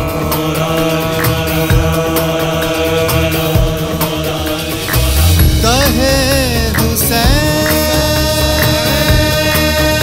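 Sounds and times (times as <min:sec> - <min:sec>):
film song with held notes: 0:00.0 - 0:10.0
steady drum beat: 0:00.0 - 0:10.0.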